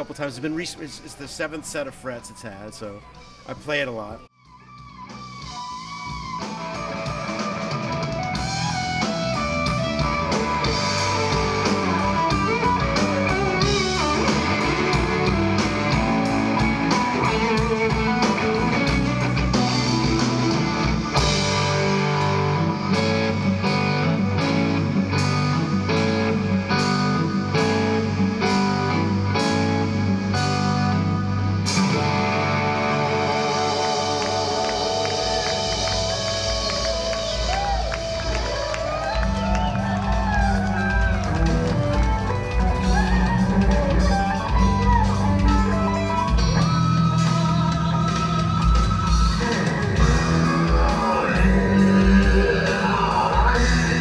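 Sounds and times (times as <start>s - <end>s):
bass guitar: 4.4s - 54.0s
lead electric guitar: 4.5s - 54.0s
drum kit: 4.6s - 29.8s, 31.6s - 54.0s.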